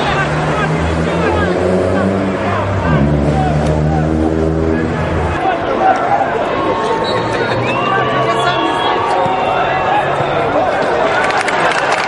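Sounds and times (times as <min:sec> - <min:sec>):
spectators talking: 0:00.0 - 0:12.0.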